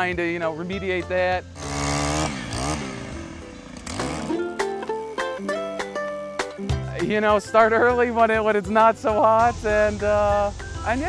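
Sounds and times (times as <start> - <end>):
music with plucked strings: 0.0 - 11.0
brush cutter engine running: 0.9 - 8.2.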